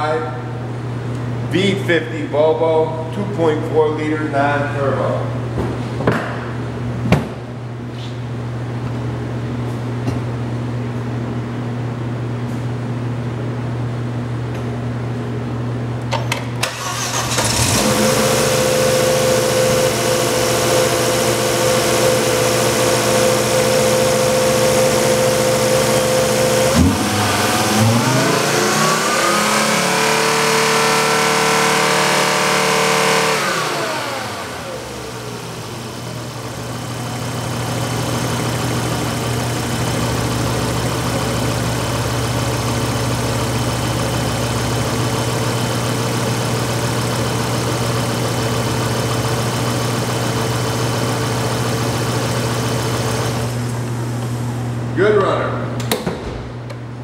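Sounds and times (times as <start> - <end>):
car engine idling and revving: 16.6 - 54.6.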